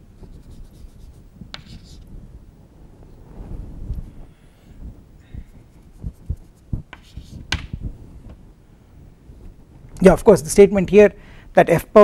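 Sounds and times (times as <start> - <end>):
chalk scratching on a chalkboard: 0.2 - 2.0, 5.5 - 7.7
chalk tap: 0.4 - 2.0, 6.2 - 7.8.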